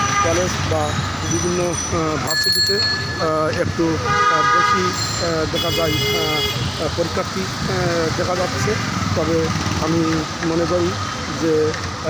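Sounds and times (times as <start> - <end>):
vehicle horn blasts: 0.0 - 0.5, 4.0 - 6.8
street traffic: 0.0 - 12.0
people's voices: 0.2 - 12.0.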